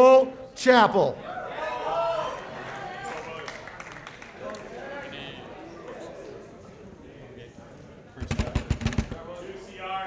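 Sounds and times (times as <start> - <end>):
man talking: 0.0 - 1.2
heavy thumps: 8.2 - 9.3.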